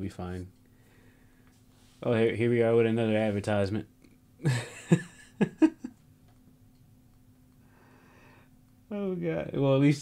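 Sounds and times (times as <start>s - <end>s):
faint steady hum: 0.0s - 10.0s
man laughing: 4.4s - 6.0s.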